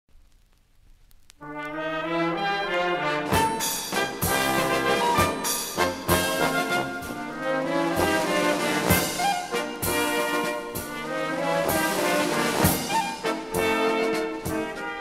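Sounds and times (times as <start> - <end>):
brass band music: 1.4 - 15.0
sharp percussion strokes: 3.3 - 7.2.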